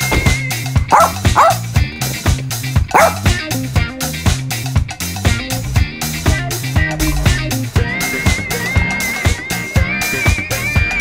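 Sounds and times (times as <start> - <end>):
upbeat music with steady beat: 0.0 - 11.0
dog barks: 0.9 - 1.8, 2.9 - 3.4.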